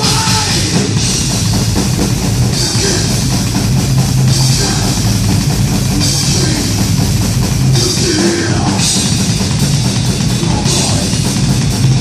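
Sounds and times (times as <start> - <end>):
heavy metal drum kit: 0.0 - 12.0.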